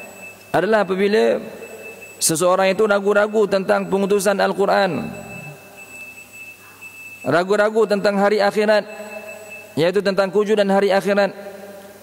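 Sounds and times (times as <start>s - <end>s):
steady high-pitched tone: 0.0s - 9.9s
man speaking: 0.5s - 5.6s, 7.3s - 9.0s, 9.8s - 11.5s.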